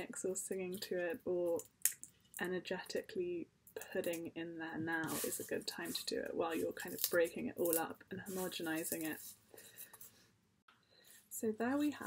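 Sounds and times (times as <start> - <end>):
dried herbs rustling in hands: 5.0 - 9.4.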